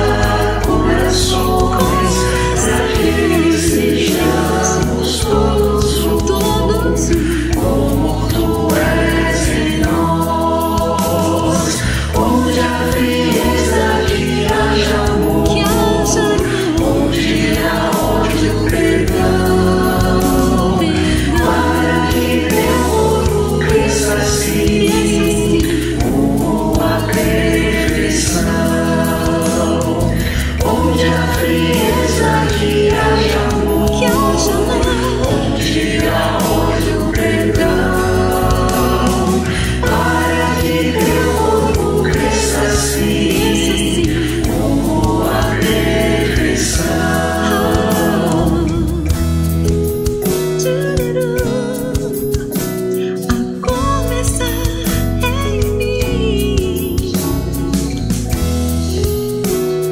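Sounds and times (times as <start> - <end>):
acoustic guitar: 0.0 - 59.9
bass guitar: 0.0 - 59.9
drums: 0.0 - 59.9
keyboard: 0.0 - 59.9
mixed choir singing worship song: 0.0 - 59.9.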